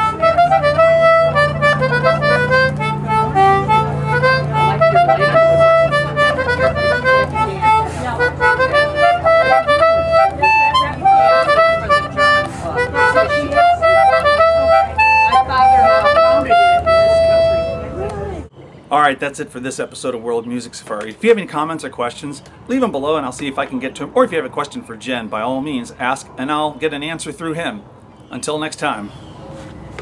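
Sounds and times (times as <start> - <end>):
concertina playing a quick tune: 0.0 - 18.5.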